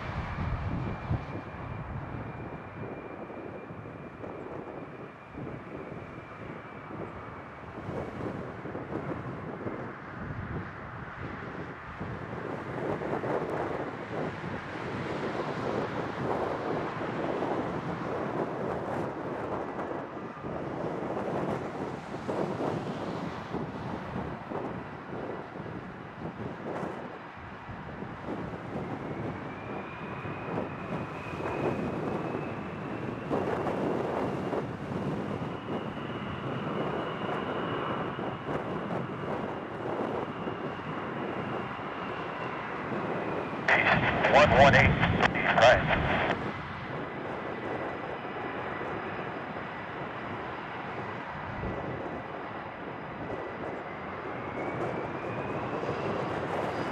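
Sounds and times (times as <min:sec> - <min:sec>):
jet engines rushing: 0:00.0 - 0:09.9, 0:40.8 - 0:51.2
wind buffeting microphone: 0:00.0 - 0:56.9
high jet whine: 0:43.5 - 0:48.8.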